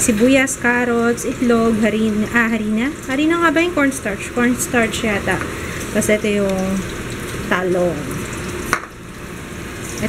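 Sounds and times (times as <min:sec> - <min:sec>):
oil sizzling in frying pan: 0:00.1 - 0:10.0.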